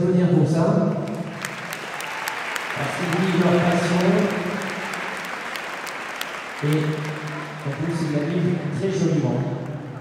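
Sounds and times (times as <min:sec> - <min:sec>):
crowd clapping: 0:00.9 - 0:10.0.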